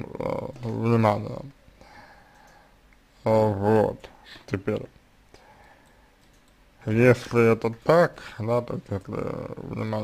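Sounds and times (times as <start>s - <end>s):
man speaking: 0.0s - 1.6s, 3.2s - 5.0s, 6.8s - 10.0s
faint clicks: 2.3s - 3.0s, 5.3s - 6.6s.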